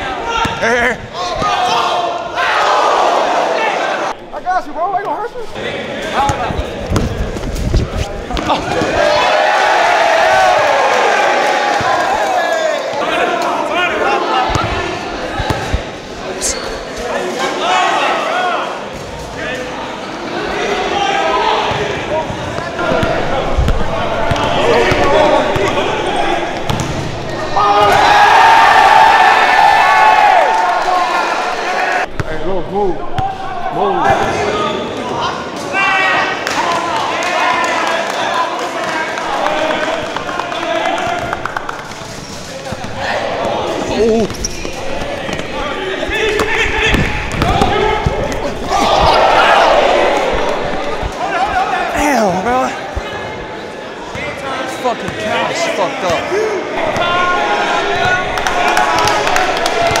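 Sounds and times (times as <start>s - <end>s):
spectators shouting: 0.0s - 4.2s, 8.4s - 18.8s, 20.2s - 32.1s, 42.6s - 53.6s, 55.0s - 60.0s
basketball bouncing on gym floor: 26.6s - 27.1s, 46.3s - 49.2s.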